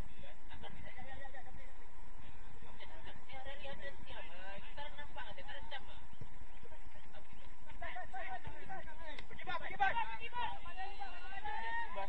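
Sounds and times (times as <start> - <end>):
distant players calling out: 0.0 - 12.0.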